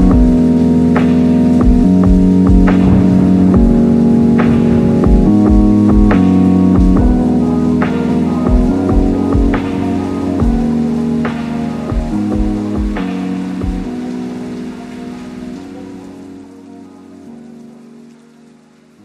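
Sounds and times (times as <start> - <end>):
rain-like hiss: 0.0 - 19.0
layered voices singing: 2.5 - 17.6.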